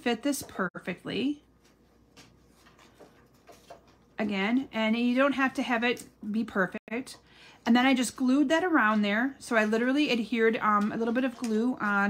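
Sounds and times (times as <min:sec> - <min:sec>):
paper ticks and rustles: 0:01.7 - 0:04.1.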